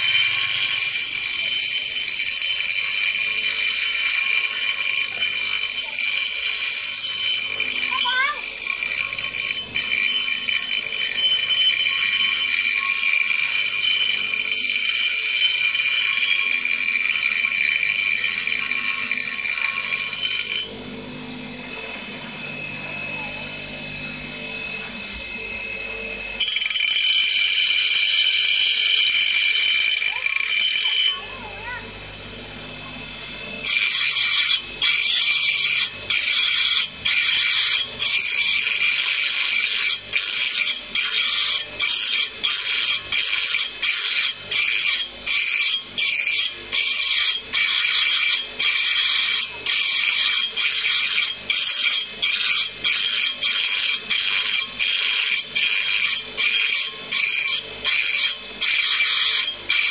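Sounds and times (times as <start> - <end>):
bench grinder grinding metal: 0.0 - 59.9
grinder running: 0.0 - 59.9.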